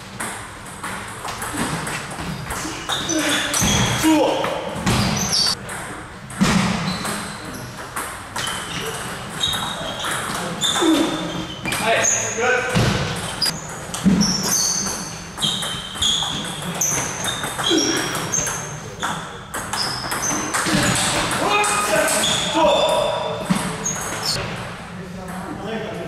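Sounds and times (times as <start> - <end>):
shoes squeaking on floor: 1.4 - 5.6, 6.7 - 24.4.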